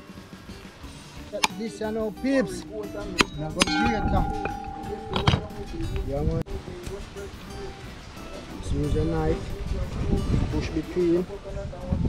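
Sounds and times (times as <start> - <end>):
metal pot ringing: 3.6 - 6.4.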